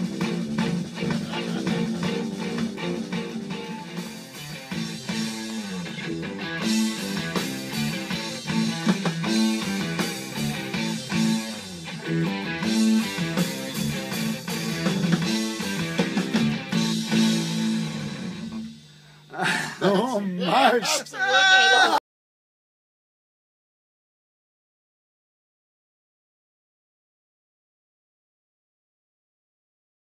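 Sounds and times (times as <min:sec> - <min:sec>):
blues band playing: 0:00.0 - 0:18.9
electric guitar: 0:00.0 - 0:19.8
bass notes: 0:00.0 - 0:19.9.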